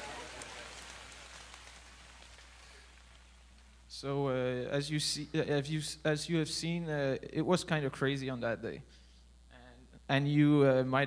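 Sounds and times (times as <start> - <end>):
heavy rain hiss over loudspeakers: 0.0 - 4.4
low steady hum: 0.0 - 11.0.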